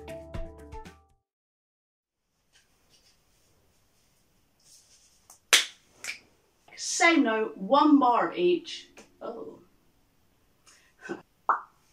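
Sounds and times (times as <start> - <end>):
finger snap: 11.5 - 11.8.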